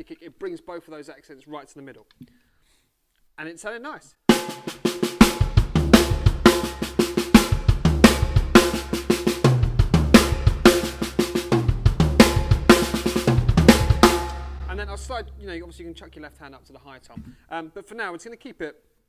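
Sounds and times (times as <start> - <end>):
snare drum rolls: 4.3 - 15.3
bass drum kicks: 5.2 - 16.4.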